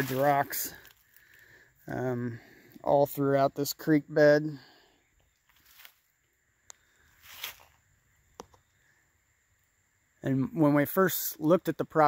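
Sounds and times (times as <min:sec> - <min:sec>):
dry leaves rustling: 0:00.0 - 0:01.3, 0:05.5 - 0:06.1, 0:07.2 - 0:07.8.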